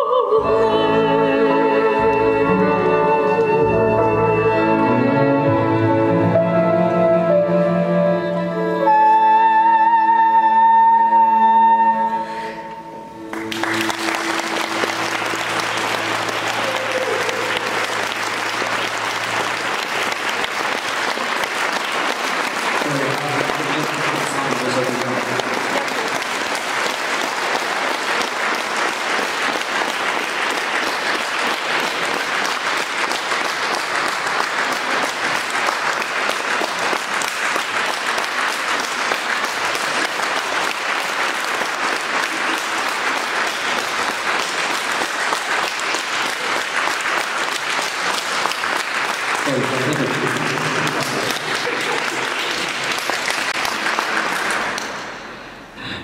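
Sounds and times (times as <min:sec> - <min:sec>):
audience clapping: 0:13.2 - 0:56.0.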